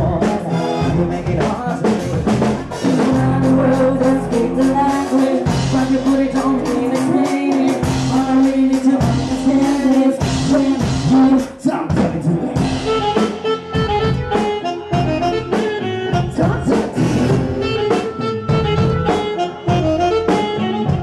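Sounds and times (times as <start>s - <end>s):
keyboard melody: 0.0s - 21.0s
steady beat: 0.0s - 21.0s.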